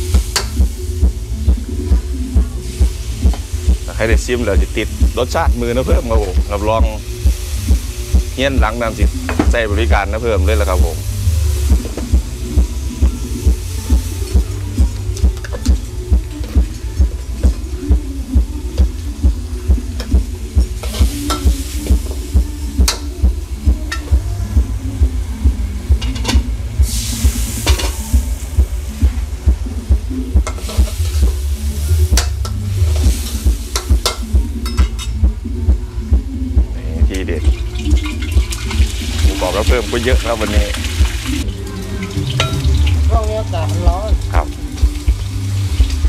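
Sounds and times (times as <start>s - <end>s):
vegetables sizzling in a wok: 0.0s - 36.0s, 37.3s - 46.0s.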